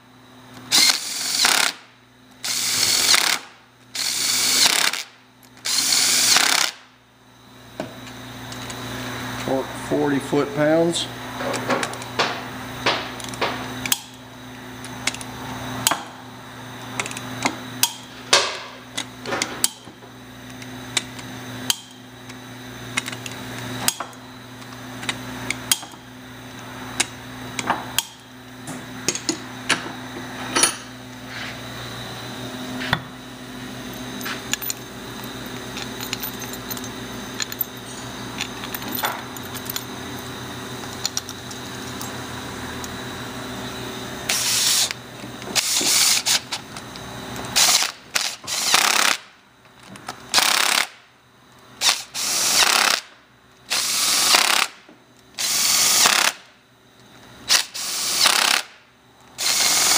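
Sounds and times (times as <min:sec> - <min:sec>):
steady low hum: 0:00.0 - 0:57.8.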